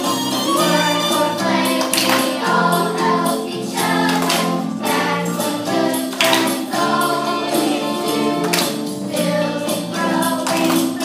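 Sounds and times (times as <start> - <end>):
group singing with instruments: 0.0 - 11.0.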